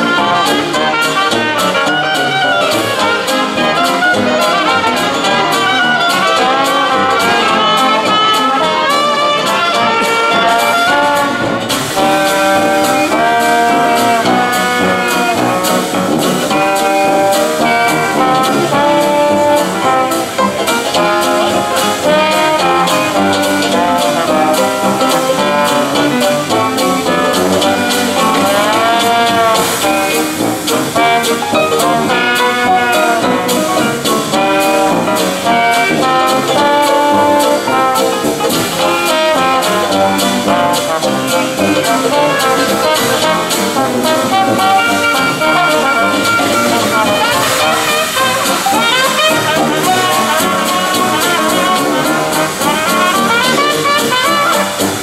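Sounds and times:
clarinet: 0:00.0 - 0:55.0
drum kit beat: 0:00.0 - 0:55.0
trombone: 0:00.0 - 0:55.0
trumpet: 0:00.0 - 0:55.0
tuba: 0:00.0 - 0:55.0.

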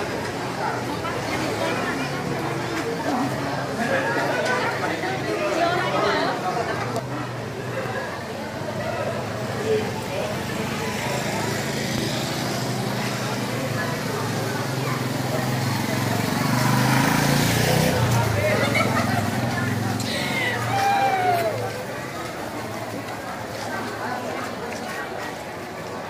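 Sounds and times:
babble of people talking: 0:00.0 - 0:26.0.

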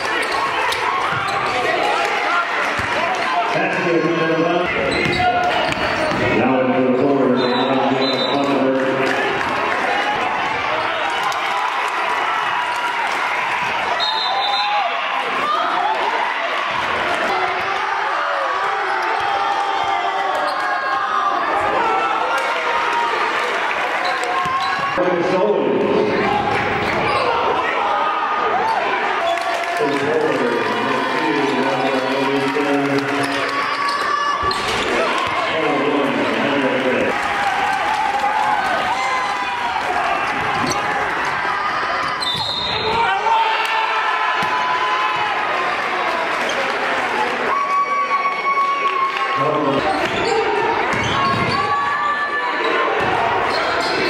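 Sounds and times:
voices echoing in hall: 0:00.0 - 0:54.0
shoe squeaks: 0:04.8 - 0:06.2, 0:42.0 - 0:42.8.

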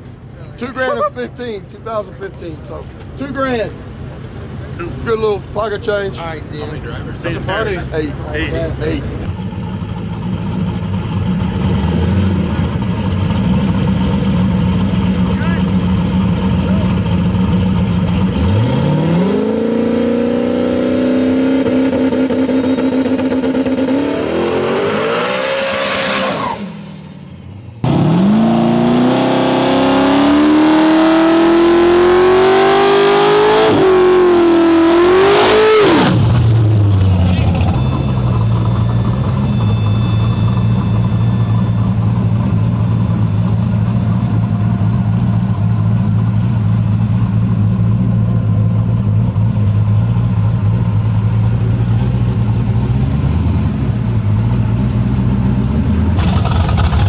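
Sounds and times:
car engine idling: 0:00.0 - 0:18.9, 0:36.2 - 0:57.0
drag car engine revving: 0:06.2 - 0:57.0.

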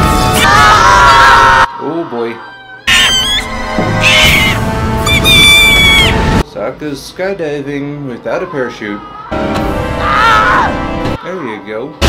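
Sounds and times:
high-pitched screams: 0:02.9 - 0:06.3
dramatic music: 0:02.9 - 0:06.4.

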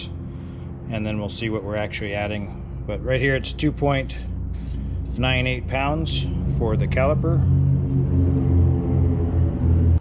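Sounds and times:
loud low-pitched hum: 0:00.0 - 0:10.0.

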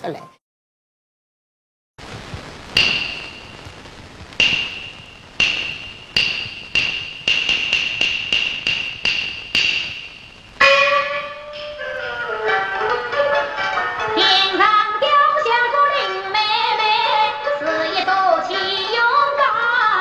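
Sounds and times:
small metal percussion strikes: 0:02.8 - 0:13.2.

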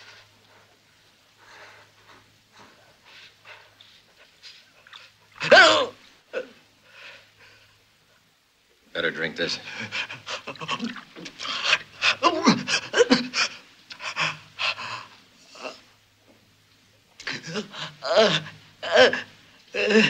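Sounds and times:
man panting and groaning in pain: 0:11.4 - 0:15.8, 0:17.2 - 0:20.0.

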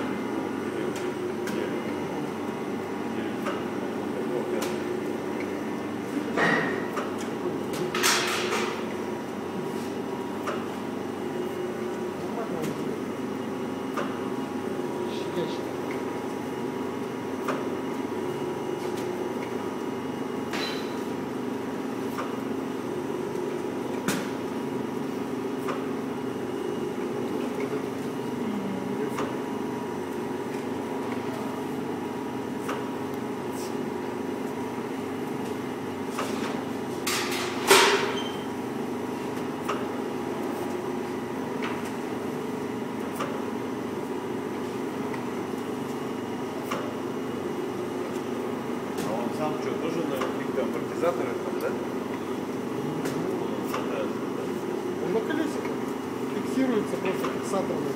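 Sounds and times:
vacuum pump humming: 0:00.0 - 0:57.9.

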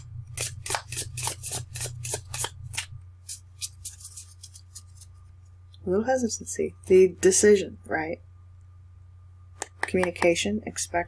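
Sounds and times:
cards being shuffled: 0:00.0 - 0:05.2.

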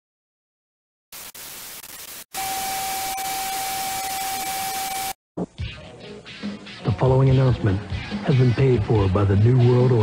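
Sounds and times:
television static hiss: 0:01.2 - 0:05.0
steady test tone: 0:02.4 - 0:05.2.

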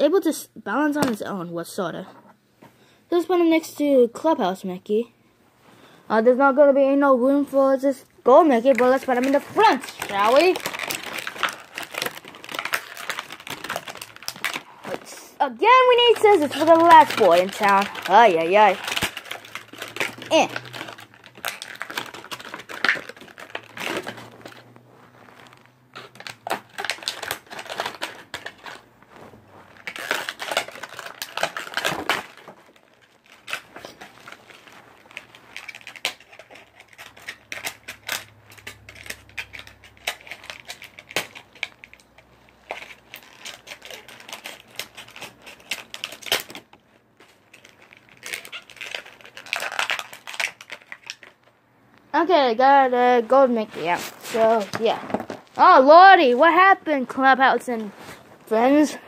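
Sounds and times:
packaging crinkling: 0:08.3 - 0:51.6, 0:53.0 - 0:56.4
scissors cutting packaging: 0:08.7 - 0:15.1, 0:15.7 - 0:24.6, 0:26.0 - 0:28.8, 0:29.8 - 0:46.7, 0:47.5 - 0:51.3.

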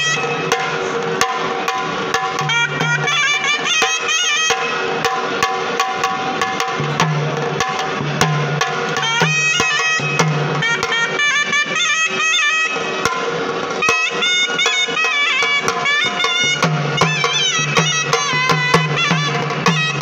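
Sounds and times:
shehnai melody: 0:00.0 - 0:06.7, 0:08.4 - 0:20.0
small drums beaten with sticks: 0:00.0 - 0:20.0.

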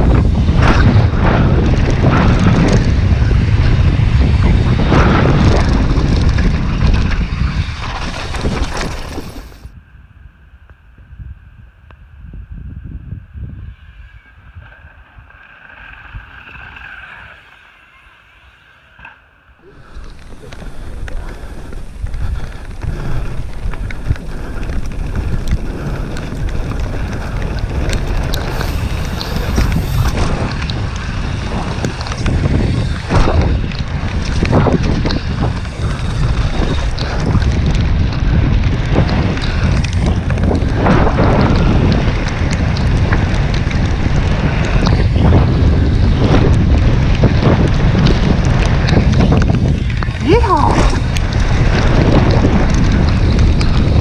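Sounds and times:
mountain bike rattling: 0:00.0 - 0:09.7, 0:13.3 - 0:54.0
bike rolling by: 0:00.0 - 0:10.1, 0:12.2 - 0:54.0
wind buffeting camera: 0:00.0 - 0:17.9, 0:18.5 - 0:54.0
tyres rumbling over dirt: 0:19.6 - 0:54.0.

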